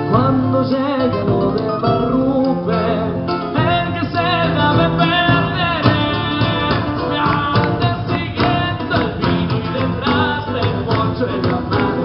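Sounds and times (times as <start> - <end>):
drums: 0.0 - 12.0
electric guitar: 0.0 - 12.0
person singing: 0.0 - 12.0.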